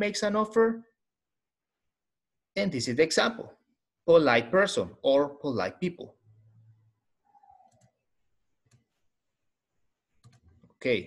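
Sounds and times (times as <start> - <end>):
man speaking: 2.6 - 6.2, 10.8 - 11.0.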